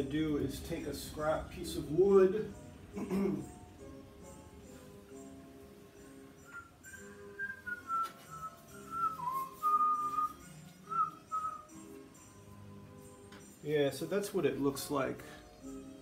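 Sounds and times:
soft background music: 0.0s - 16.0s
person whistling a tune: 6.4s - 12.0s.

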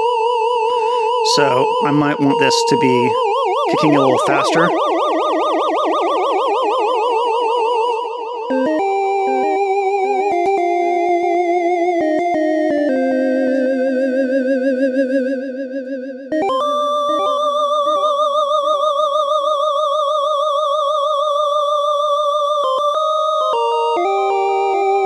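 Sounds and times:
synthesizer lead notes with tremolo: 3.2s - 15.2s, 16.3s - 19.1s.

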